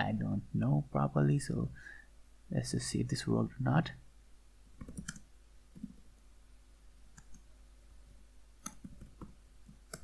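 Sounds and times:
computer keyboard typing clicks: 4.8 - 6.0, 8.6 - 10.0.

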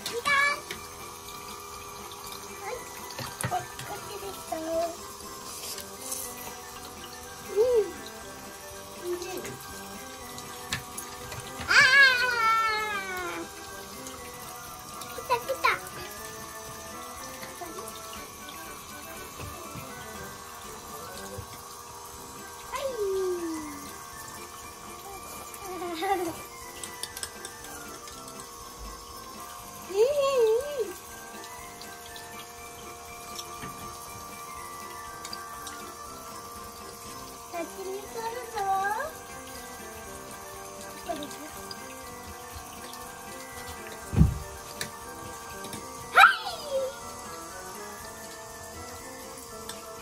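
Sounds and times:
background music: 0.0 - 50.0
water trickling down plastic chutes: 0.0 - 50.0.

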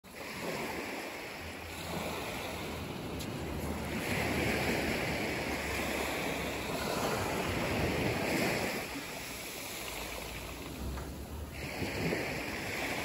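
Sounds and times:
small waves washing on pebble beach: 0.1 - 13.0
wind rumbling on microphone: 0.1 - 13.0.

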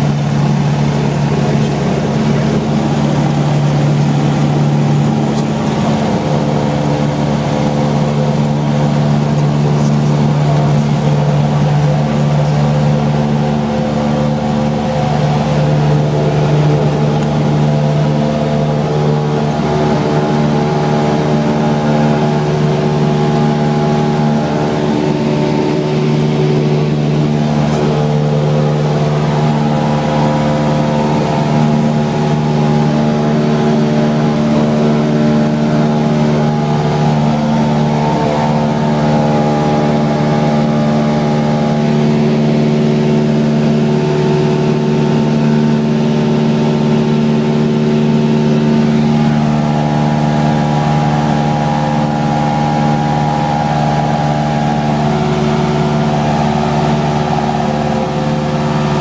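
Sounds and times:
light aircraft engine drone: 0.0 - 59.0.

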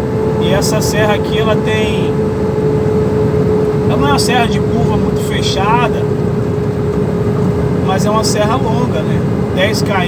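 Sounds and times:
diesel truck engine braking: 0.0 - 10.0
engine whine: 0.0 - 10.0.

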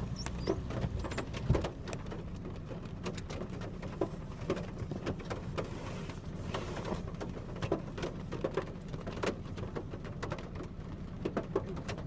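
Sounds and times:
rain drips: 0.0 - 12.0
wet-road traffic rumble: 0.0 - 12.0.

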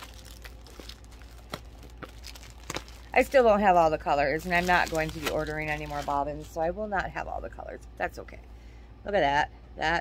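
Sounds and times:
plastic packaging crinkling: 0.0 - 6.7.

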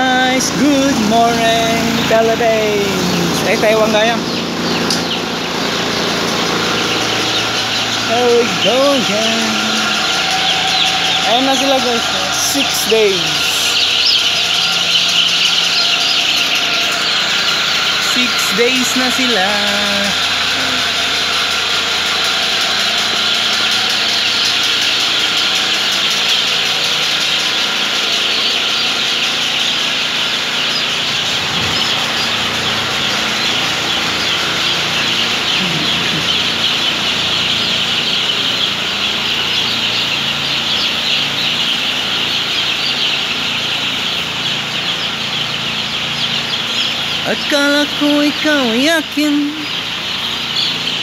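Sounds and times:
chicks peeping: 0.0 - 51.0
low mechanical hum: 0.0 - 51.0.

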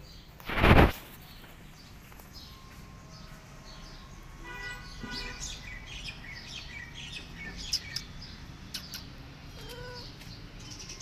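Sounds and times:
small birds chirping: 0.0 - 11.0
cat meow: 9.5 - 10.2.

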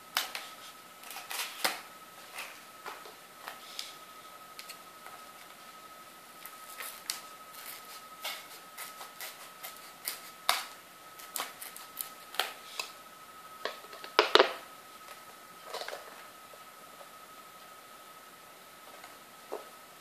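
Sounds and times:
scissors cutting cardboard: 6.7 - 12.9.

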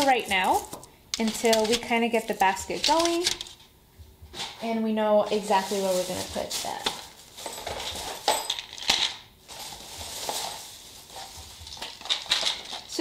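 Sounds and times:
plastic packaging crinkling: 0.0 - 3.6, 5.3 - 13.0.

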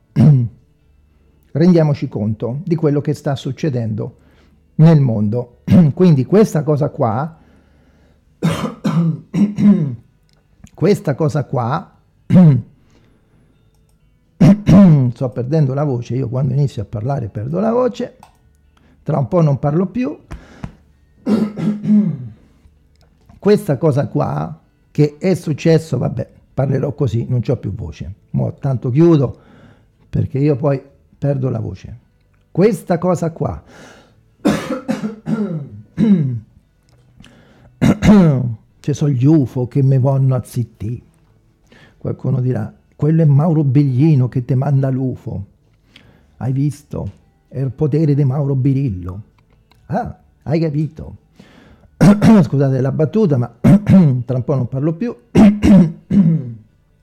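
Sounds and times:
man clearing throat and coughing: 0.1 - 0.6, 8.4 - 10.1, 12.3 - 12.7, 14.4 - 14.9, 20.3 - 22.4, 34.4 - 36.5, 37.8 - 38.4, 53.6 - 54.2, 55.3 - 56.7.

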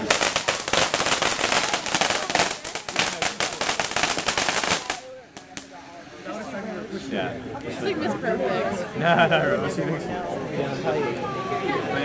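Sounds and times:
sharp firework pops: 0.0 - 5.7
ground firework crackling: 0.0 - 5.9
voices: 0.0 - 12.0.

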